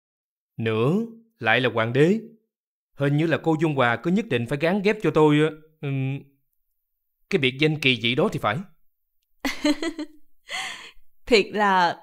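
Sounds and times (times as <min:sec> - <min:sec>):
woman laughing: 0:09.4 - 0:11.0
sharp in-breath: 0:10.5 - 0:11.0.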